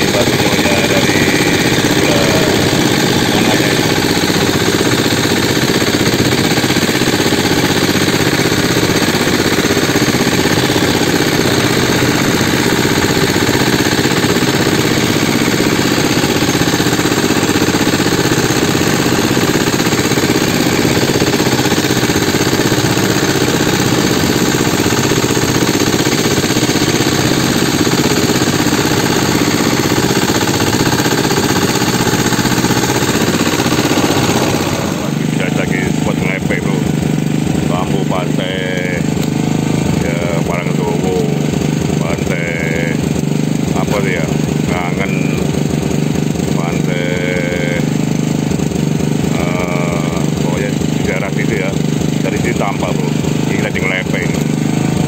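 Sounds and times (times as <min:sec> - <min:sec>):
small boat engine running: 0:00.0 - 0:55.0.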